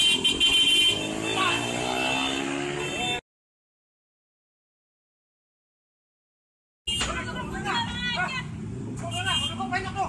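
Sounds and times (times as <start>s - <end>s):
street traffic hum: 0.0s - 3.2s, 6.9s - 10.0s
voices talking: 1.0s - 3.2s, 6.9s - 10.0s.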